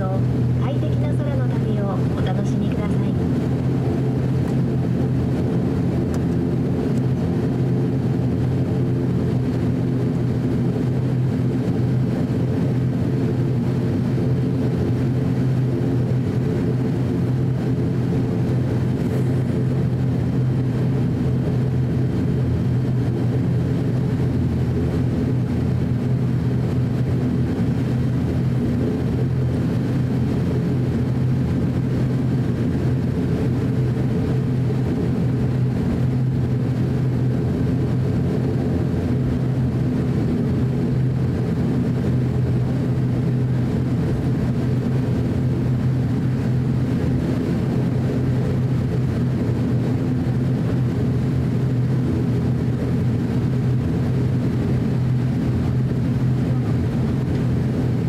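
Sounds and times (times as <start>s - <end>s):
turboprop engine cabin drone: 0.0s - 58.0s.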